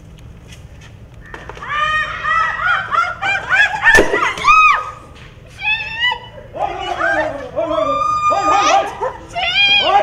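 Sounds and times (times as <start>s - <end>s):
women shrieking: 1.6s - 5.0s, 5.6s - 10.0s
thud of a fall: 4.0s - 4.6s.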